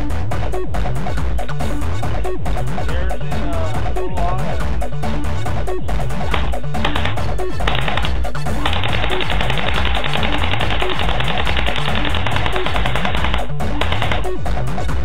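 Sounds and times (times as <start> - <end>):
electronic music with steady beat: 0.0 - 15.0
airsoft gun full auto firing: 6.4 - 14.3.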